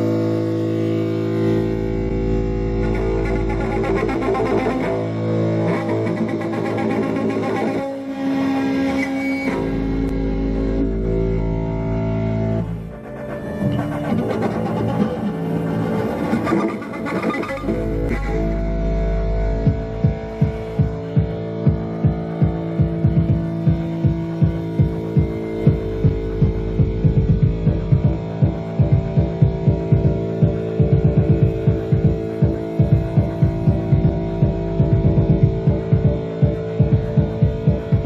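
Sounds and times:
deep sustained drone: 0:00.0 - 0:38.0
electric bass guitars: 0:00.0 - 0:38.0
steady throbbing pulse: 0:00.0 - 0:38.0.

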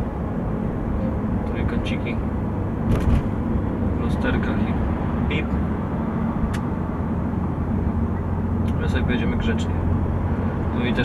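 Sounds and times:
diesel engine drone in cabin: 0:00.0 - 0:11.0
road and tyre noise: 0:00.0 - 0:11.0.

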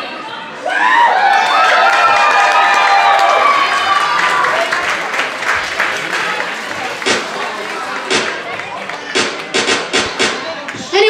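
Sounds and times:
crowd voices: 0:00.0 - 0:11.0
audience clapping: 0:01.4 - 0:10.8.

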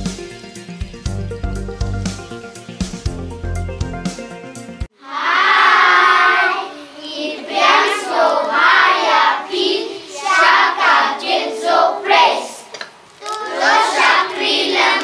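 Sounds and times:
intro music: 0:00.0 - 0:04.9
children singing unaccompanied: 0:04.9 - 0:15.0.

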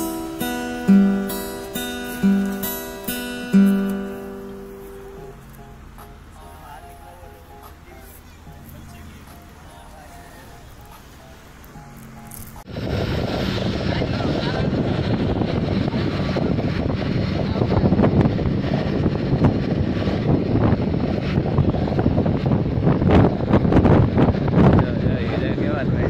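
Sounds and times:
faint background music: 0:00.0 - 0:12.7
wind buffeting microphone: 0:00.0 - 0:26.0.

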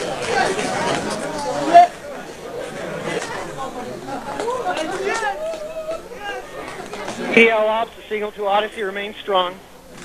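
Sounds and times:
excited crowd chatter: 0:00.0 - 0:10.0.

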